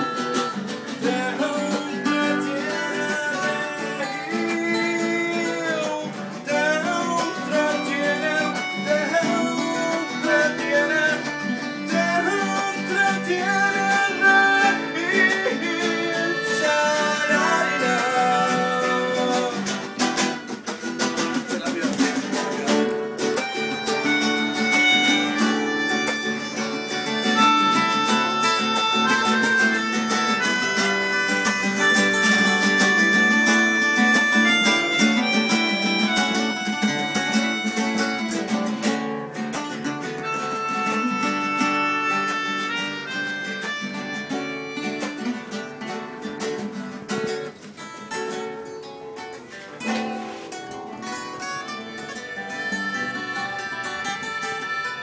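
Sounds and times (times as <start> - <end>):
melodica melody: 0.0 - 46.8, 49.5 - 55.0
acoustic guitar strumming chords: 0.0 - 55.0.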